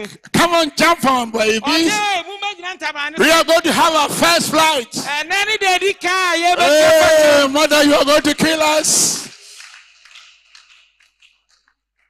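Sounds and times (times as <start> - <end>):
faint scattered handclaps: 9.1 - 12.0.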